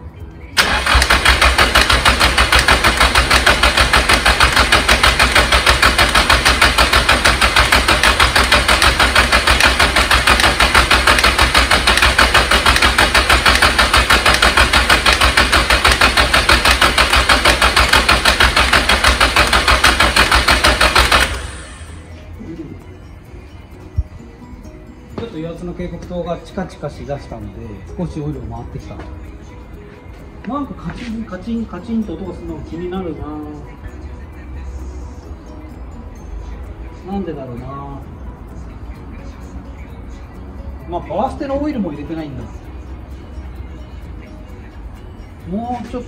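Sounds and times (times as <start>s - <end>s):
engine cranking on starter motor: 0.6s - 22.1s
engine ticking: 0.6s - 22.4s.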